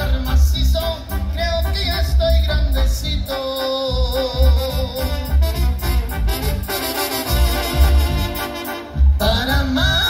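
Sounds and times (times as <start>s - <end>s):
pulsing low bass beat: 0.0s - 3.3s, 3.9s - 6.7s, 7.3s - 10.0s
trumpets and trombones playing: 0.0s - 10.0s
drum kit: 4.0s - 10.0s.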